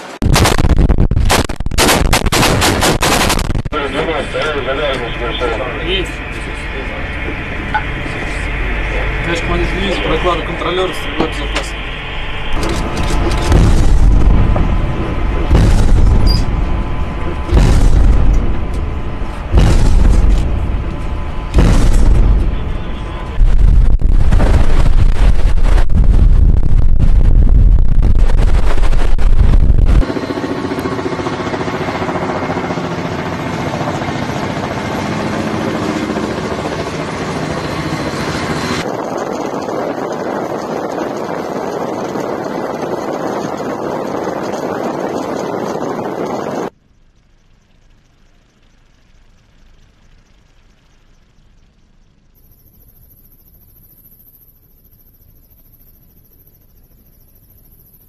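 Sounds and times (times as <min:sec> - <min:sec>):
steady rushing noise: 0:00.0 - 0:51.8
rapid gunfire burst: 0:00.2 - 0:03.8
faint hum: 0:03.1 - 0:58.0
heavy gun booms: 0:13.4 - 0:16.7, 0:17.3 - 0:18.8, 0:19.4 - 0:20.8, 0:21.5 - 0:25.2.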